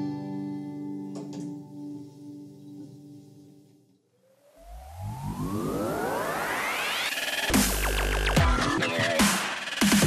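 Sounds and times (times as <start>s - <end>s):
rising electronic tones: 4.1s - 9.3s
rush of noise: 4.4s - 9.9s
low rumble: 4.6s - 8.0s.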